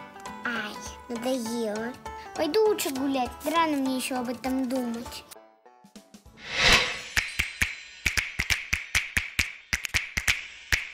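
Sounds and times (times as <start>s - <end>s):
sharp percussive clicks: 7.1s - 10.9s.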